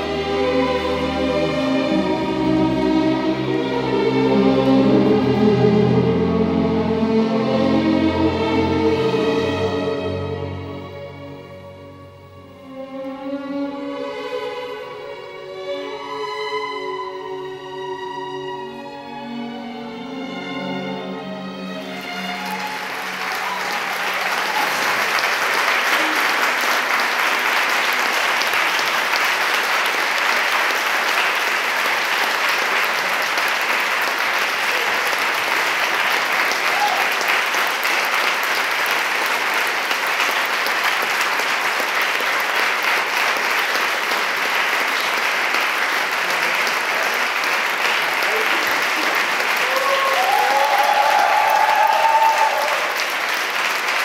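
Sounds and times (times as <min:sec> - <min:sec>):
music: 0:00.0 - 0:54.0
audience clapping: 0:21.7 - 0:54.0.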